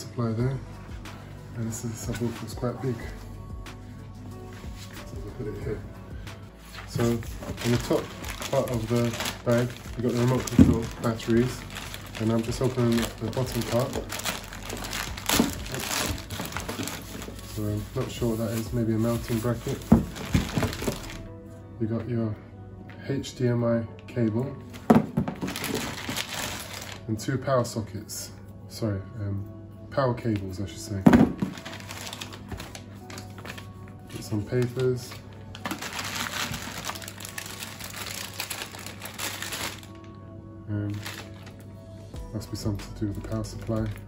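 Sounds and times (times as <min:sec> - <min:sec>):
plastic bag crinkling: 0:06.8 - 0:21.3, 0:24.8 - 0:27.1, 0:31.2 - 0:40.1, 0:40.9 - 0:41.6.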